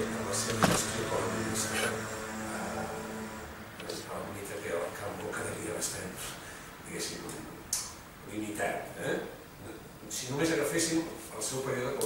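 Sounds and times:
low hum: 0:00.0 - 0:06.2.

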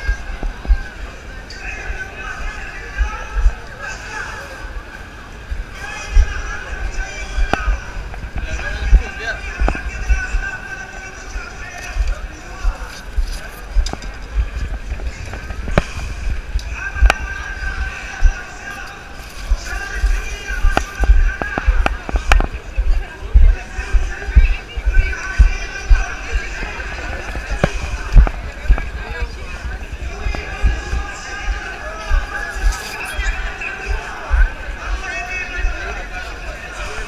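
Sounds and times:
indistinct voices of passers-by: 0:00.0 - 0:37.0.

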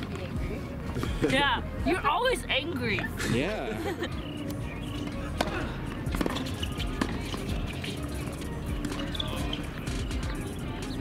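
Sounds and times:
racket hitting tennis ball: 0:04.5 - 0:09.2.

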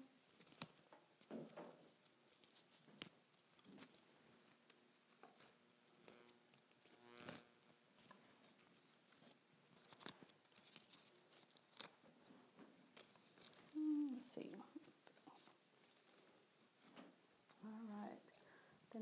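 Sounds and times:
small clicks and snaps: 0:00.3 - 0:01.0, 0:02.0 - 0:04.0, 0:04.6 - 0:12.0
rustling of leaves and stems: 0:02.3 - 0:16.9.

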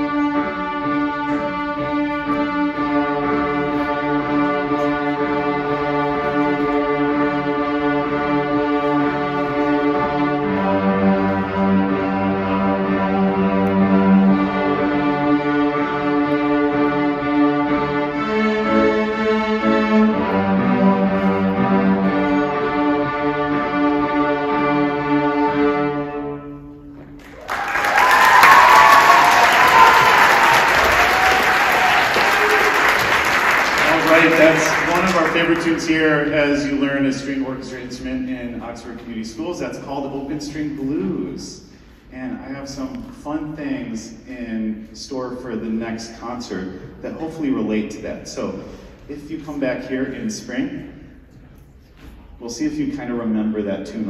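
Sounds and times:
string orchestra playing blues: 0:00.0 - 0:26.7, 0:33.8 - 0:43.2
audience applauding: 0:27.2 - 0:36.0.

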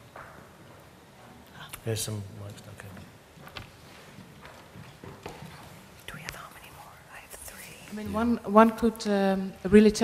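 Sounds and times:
footsteps on hard floor: 0:03.4 - 0:05.9.

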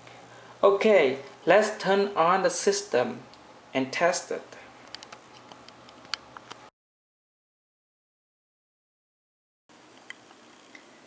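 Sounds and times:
small clicks and ticks: 0:04.8 - 0:06.6.

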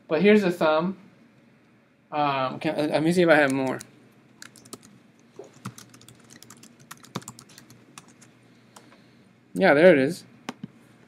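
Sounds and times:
computer keyboard keystrokes: 0:03.4 - 0:08.3.

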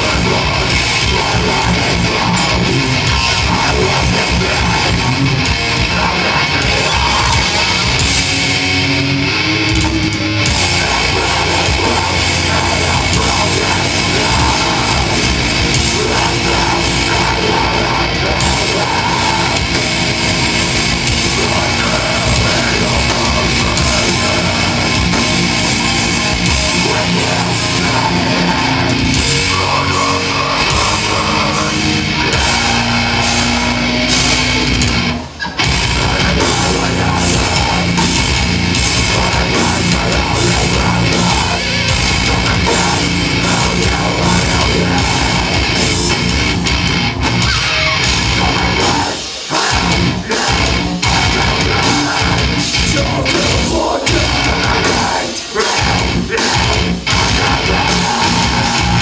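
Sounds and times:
live metal band playing: 0:00.0 - 0:59.0.

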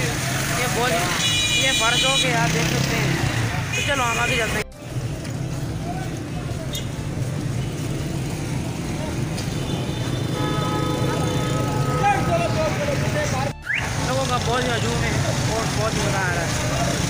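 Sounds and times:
motorcycle and traffic engines: 0:00.0 - 0:17.0
crowd voices: 0:02.4 - 0:10.3.

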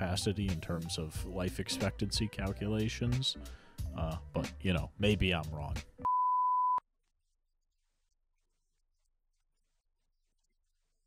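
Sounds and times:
pure test tone beep: 0:06.0 - 0:06.8.

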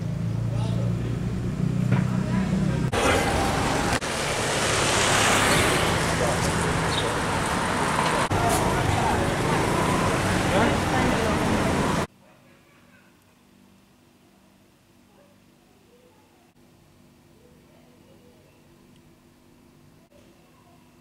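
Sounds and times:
street traffic: 0:00.0 - 0:12.1.

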